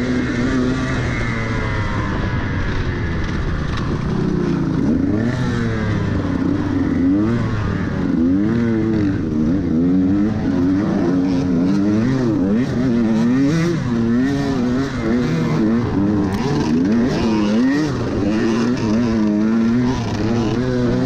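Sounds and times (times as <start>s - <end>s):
dirt bike engine revving: 0.0s - 21.0s.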